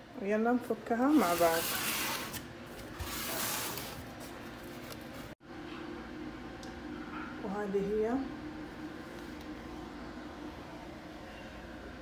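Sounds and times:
steady hum: 0.0s - 12.0s
cardboard packaging rustling: 1.2s - 5.3s.

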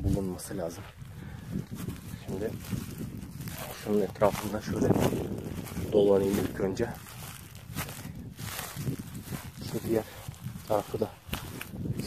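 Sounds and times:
footsteps through grass: 0.0s - 12.0s
rustling: 2.4s - 12.0s.

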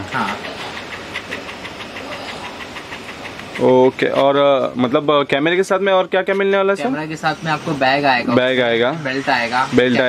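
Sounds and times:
faint even ticking: 0.0s - 6.3s
steady mechanical running noise: 0.0s - 10.0s.

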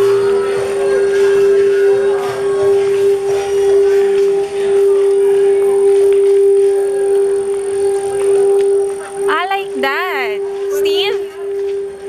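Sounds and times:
held drone note music: 0.0s - 12.0s.

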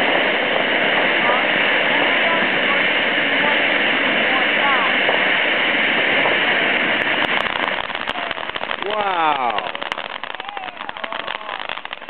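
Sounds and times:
firework fountain hissing: 0.0s - 12.0s
sharp firework crackles: 0.0s - 12.0s.

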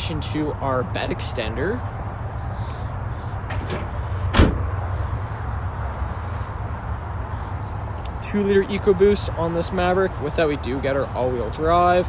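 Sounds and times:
tailgate slamming shut: 3.5s - 4.8s.

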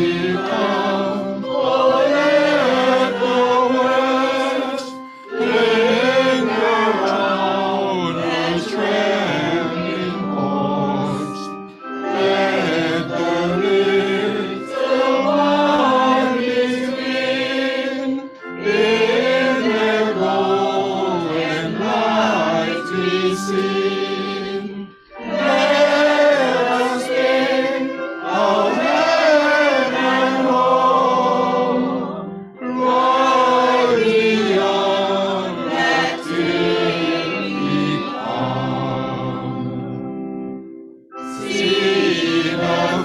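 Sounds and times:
group singing a hymn: 0.0s - 40.5s, 41.1s - 43.0s.

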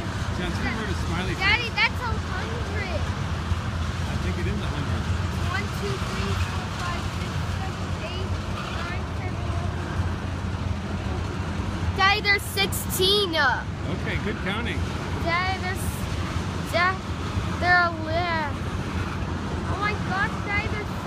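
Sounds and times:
freight train rumbling past: 0.0s - 21.0s.

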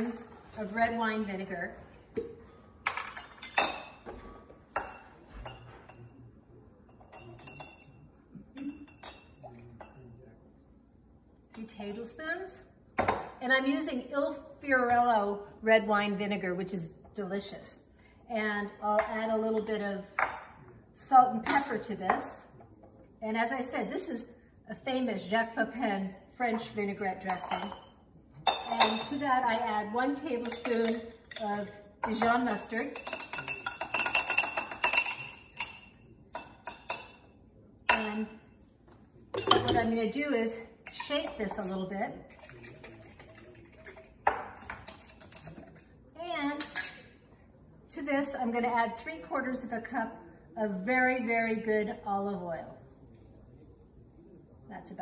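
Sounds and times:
metal spoon clinking glass bowl: 6.9s - 10.0s, 27.2s - 27.9s, 30.4s - 37.3s, 39.4s - 39.9s.

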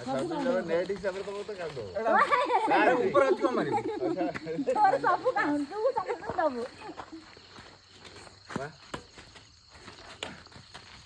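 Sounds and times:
people talking and calling out: 0.0s - 9.2s
crickets chirring: 0.0s - 11.0s.

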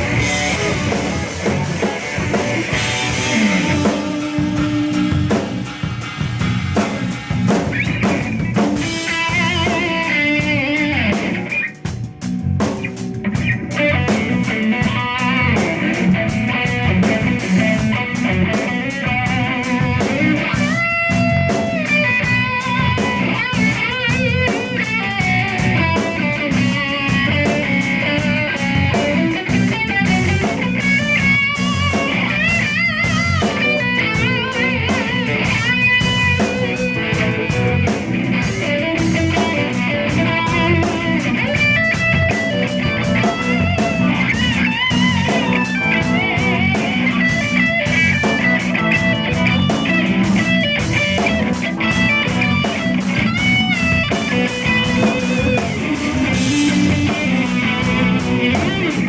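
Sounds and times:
drum kit with cymbals: 0.0s - 59.0s
electric guitar bending notes: 0.0s - 59.0s.

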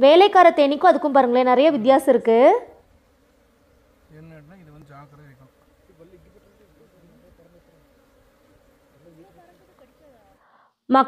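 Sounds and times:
honeybee buzzing: 0.0s - 10.6s.

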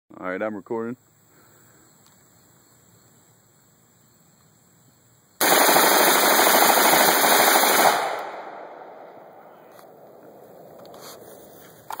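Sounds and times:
rifle rapid shots: 5.4s - 9.0s
gunshot echo: 5.4s - 10.1s.

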